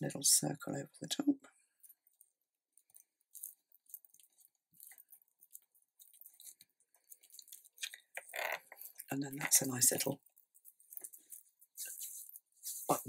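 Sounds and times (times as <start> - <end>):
paper crackling: 1.8 - 13.0.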